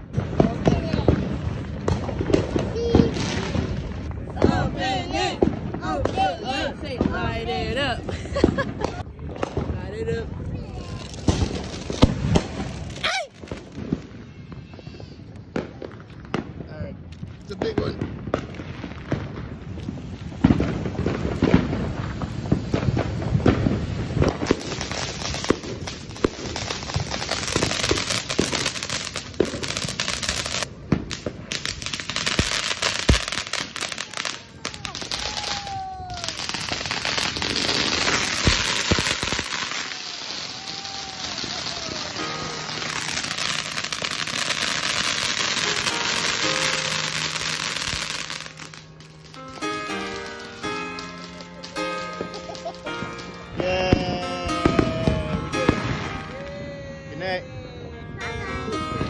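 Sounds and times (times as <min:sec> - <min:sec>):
firework crackling and hissing: 0:00.0 - 0:59.0
sharp firework pops: 0:00.1 - 0:03.7, 0:10.8 - 0:40.9
firework whistles: 0:31.7 - 0:49.8.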